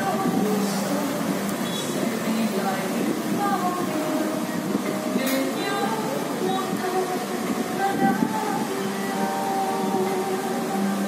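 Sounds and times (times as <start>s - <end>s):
music of long held notes: 0.0s - 11.0s
steady hiss: 0.0s - 11.0s.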